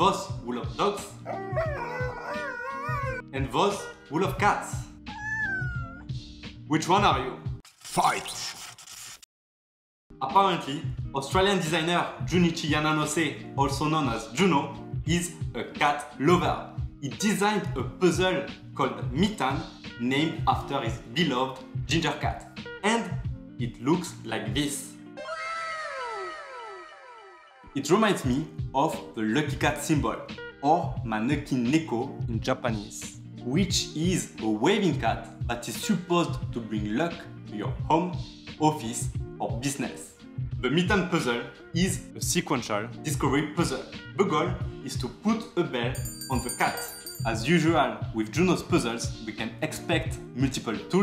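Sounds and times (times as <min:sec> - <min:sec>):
background music: 0:00.0 - 0:07.6, 0:10.1 - 0:51.0
dog howling: 0:01.2 - 0:03.3, 0:05.1 - 0:06.1, 0:25.2 - 0:27.8
cat meowing: 0:01.3 - 0:03.2, 0:05.1 - 0:06.1.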